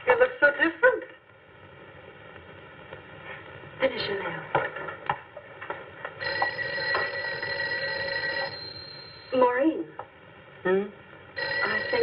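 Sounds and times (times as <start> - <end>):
telephone ringing: 6.2 - 9.6, 11.4 - 12.0.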